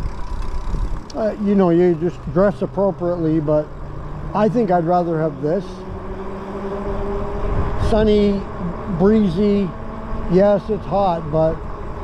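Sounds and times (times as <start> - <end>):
wind rumble on microphone: 0.0 - 3.0, 5.8 - 12.0
electric bike motor humming: 0.0 - 12.0.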